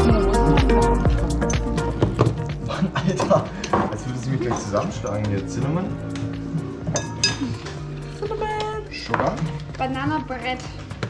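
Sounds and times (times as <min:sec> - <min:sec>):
background music: 0:00.0 - 0:11.0
kitchen dishes clinking: 0:06.9 - 0:07.8.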